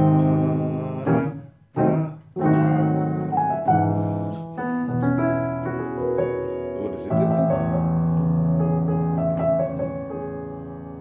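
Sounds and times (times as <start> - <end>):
synthesizer keyboard piano sound: 0.0 - 11.0.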